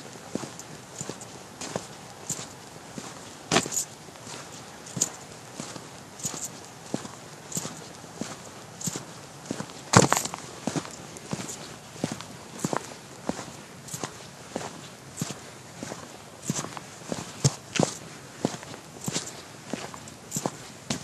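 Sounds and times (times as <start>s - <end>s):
footsteps on hard pavement: 0.0s - 21.0s.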